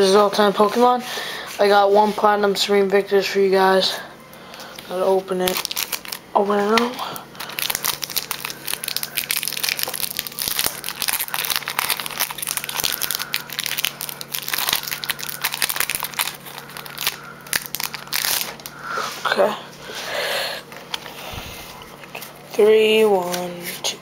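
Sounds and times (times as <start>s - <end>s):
foil wrapper crinkling: 4.5s - 19.2s.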